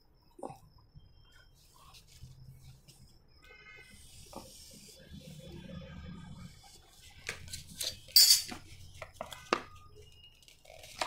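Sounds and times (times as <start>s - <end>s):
bright metallic clatter: 7.5s - 8.6s.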